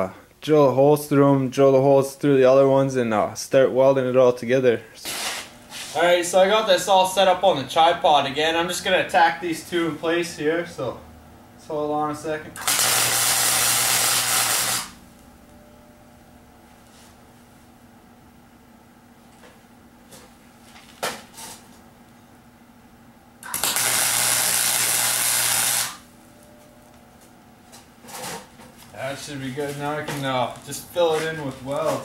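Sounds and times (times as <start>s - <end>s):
crackling buzzing arc welds: 5.0s - 8.0s, 12.5s - 15.6s, 23.4s - 32.0s.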